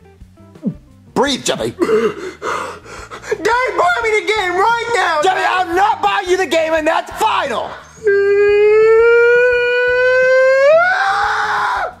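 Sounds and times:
person screaming: 8.0 - 12.0.

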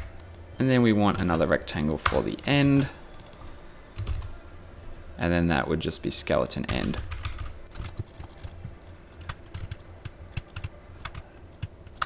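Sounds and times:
computer keyboard typing: 3.1 - 4.3, 6.7 - 12.0.

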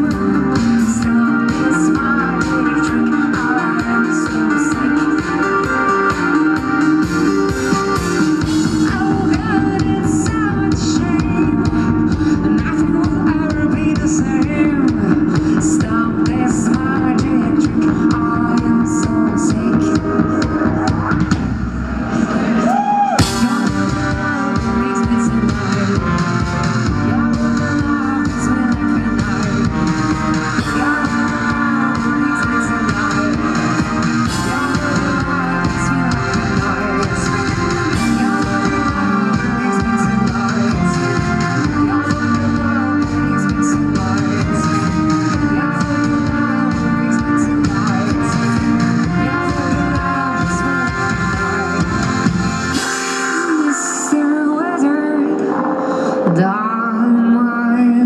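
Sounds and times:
woman singing: 0.0 - 21.5, 22.2 - 58.0
drum kit: 0.0 - 54.2
guitar: 0.0 - 58.0.

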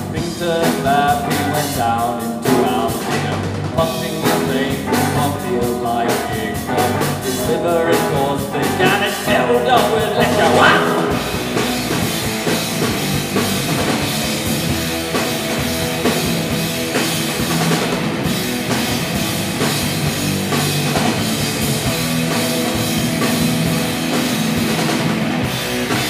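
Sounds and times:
bass guitar: 0.0 - 26.0
drum kit: 0.0 - 26.0
electric guitars: 0.0 - 26.0.

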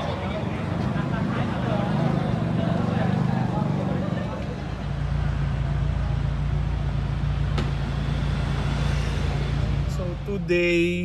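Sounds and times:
vehicle engine humming: 0.0 - 11.0.

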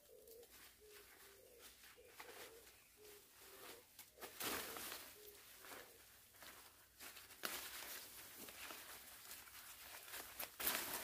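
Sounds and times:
weeds rustling and tearing: 0.2 - 11.0.

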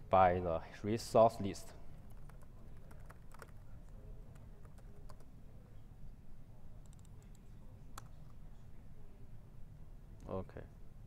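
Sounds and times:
keyboard typing clicks: 2.1 - 3.6, 6.8 - 7.4.

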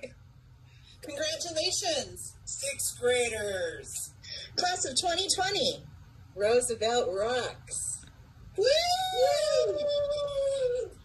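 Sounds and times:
adults cheering woo: 8.6 - 11.0.

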